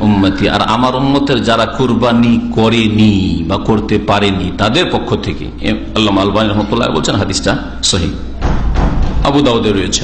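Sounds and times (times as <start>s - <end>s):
man speaking into a microphone: 0.0s - 8.3s, 9.2s - 10.0s
dull low thump: 8.4s - 9.3s.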